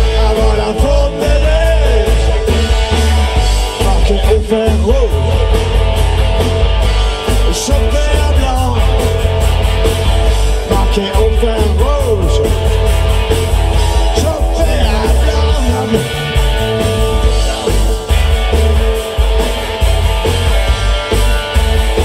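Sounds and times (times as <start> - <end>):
bass guitar: 0.0 - 22.0
drum kit with cymbals: 0.0 - 22.0
electric guitar lead: 0.0 - 22.0.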